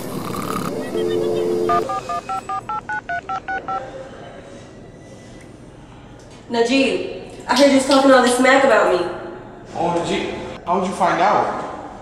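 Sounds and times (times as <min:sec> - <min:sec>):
telephone dial tone: 0:00.0 - 0:03.8
touch-tone key beeps: 0:00.7 - 0:03.8.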